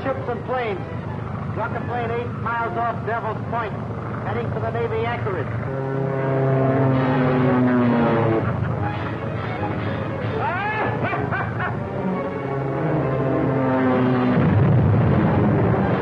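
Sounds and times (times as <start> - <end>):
propeller aircraft engine drone: 0.0 - 16.0.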